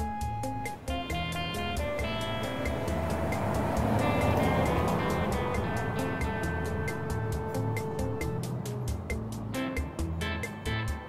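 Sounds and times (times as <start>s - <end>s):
background music with ticking beat: 0.0s - 11.0s
broad rushing noise: 0.6s - 10.0s.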